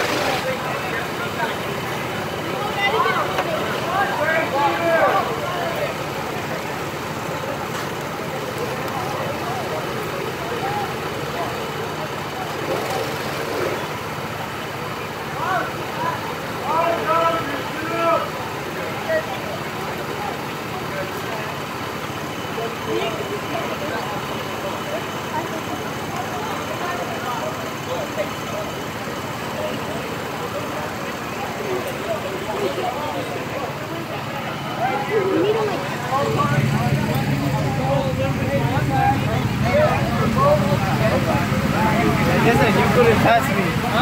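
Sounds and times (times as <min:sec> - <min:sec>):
go-kart engines droning: 0:00.0 - 0:44.0
voices calling out: 0:00.0 - 0:44.0.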